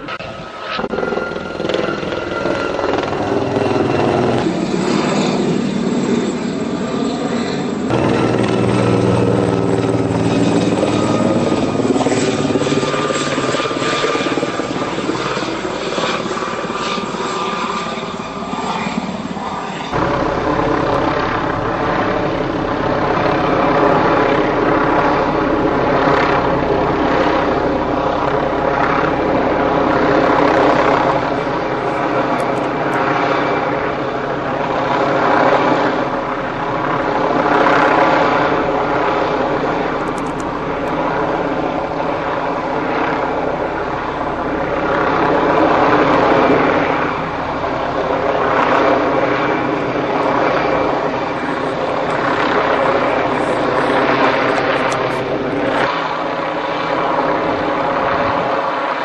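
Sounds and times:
helicopter rotors and engines: 0:00.0 - 0:59.0.

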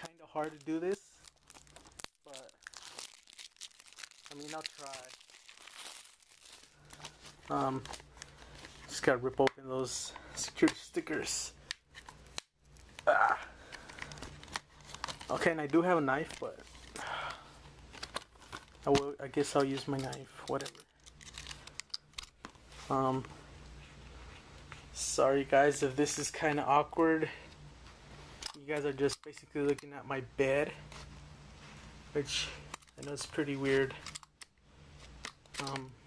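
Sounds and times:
plastic case and packaging crinkling: 0:00.0 - 0:09.0, 0:17.9 - 0:22.6.

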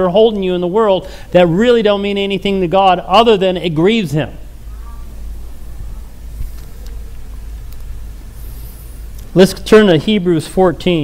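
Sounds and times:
low hum of room tone: 0:00.0 - 0:11.0.

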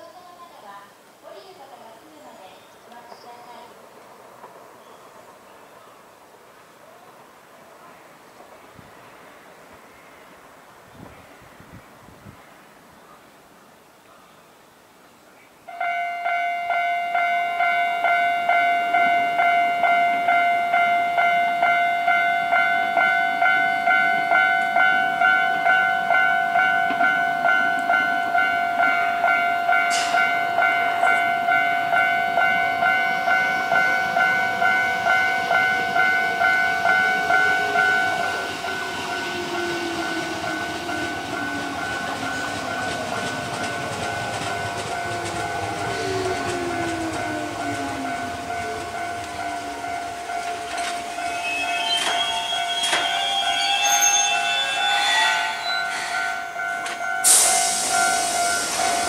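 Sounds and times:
level crossing warning bell: 0:15.7 - 0:59.0
electric train whine braking: 0:32.4 - 0:59.0.

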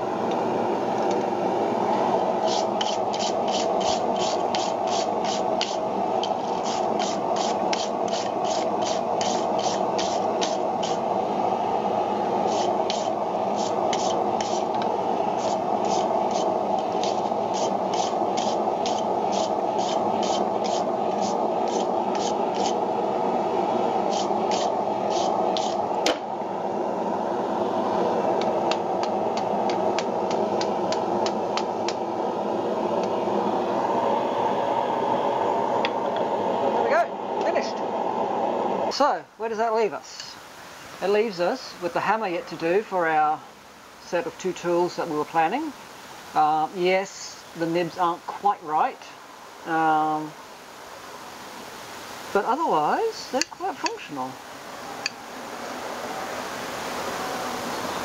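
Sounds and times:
steady rushing noise: 0:00.0 - 0:42.0
wire brush scraping hot metal: 0:02.3 - 0:11.1, 0:12.4 - 0:22.9, 0:24.0 - 0:26.1.

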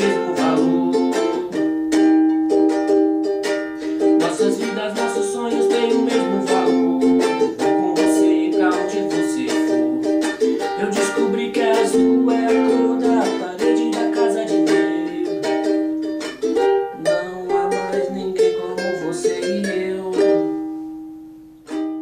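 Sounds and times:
man singing: 0:00.0 - 0:01.8, 0:03.8 - 0:20.6
ukulele strumming: 0:00.0 - 0:22.0.

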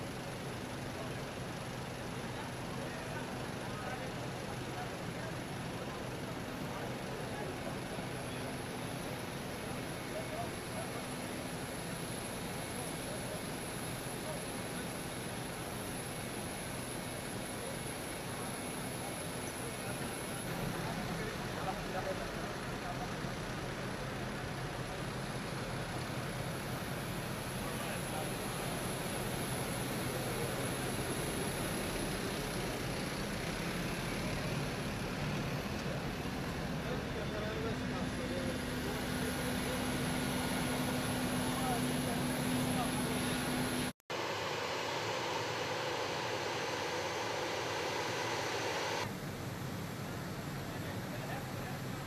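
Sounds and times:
idling buses humming: 0:00.1 - 0:52.0
faint indistinct voices: 0:00.5 - 0:43.9, 0:50.5 - 0:52.0
thin high whine: 0:38.5 - 0:49.1.

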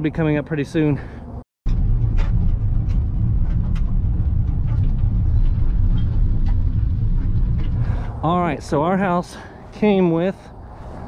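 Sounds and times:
steady low rumble: 0:01.0 - 0:11.0.

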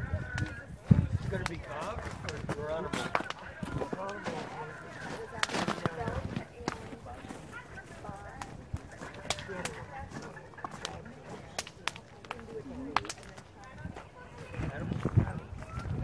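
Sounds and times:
indistinct chatter: 0:00.0 - 0:16.0
bonfire crackling and popping: 0:00.2 - 0:07.4, 0:08.2 - 0:14.2.

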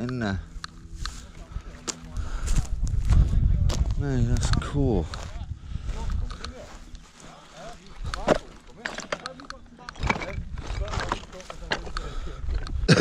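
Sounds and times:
faint voices: 0:00.0 - 0:13.0
wind rumble on microphone: 0:00.7 - 0:07.0, 0:10.0 - 0:11.3
footsteps on loose slate: 0:07.7 - 0:12.9.

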